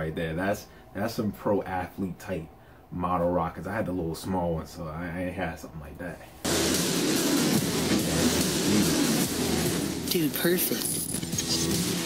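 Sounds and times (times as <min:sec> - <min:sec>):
loud steady rushing noise: 0:06.4 - 0:10.6.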